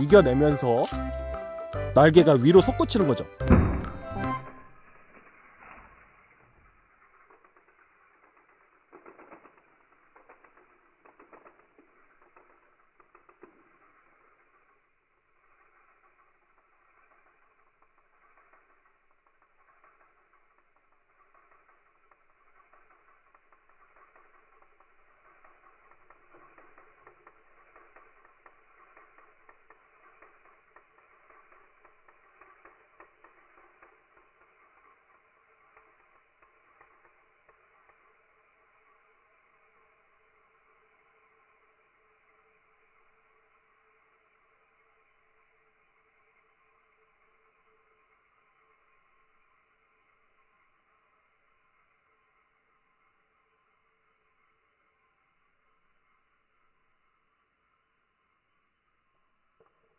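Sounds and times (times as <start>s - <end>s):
spinning top whirring: 0.0s - 59.9s.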